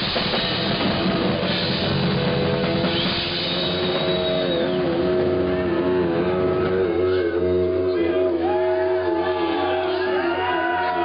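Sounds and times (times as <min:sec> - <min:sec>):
rock band distorted chord: 0:00.0 - 0:11.0.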